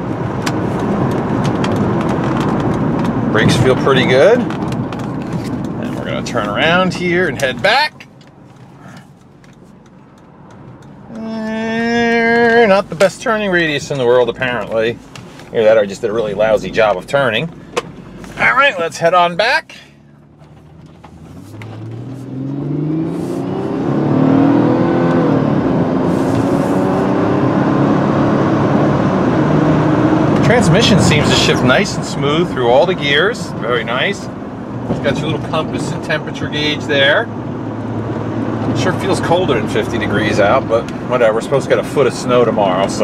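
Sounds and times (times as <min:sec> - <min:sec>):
car cabin noise: 0:00.0 - 0:43.0
road and wind noise: 0:00.0 - 0:43.0.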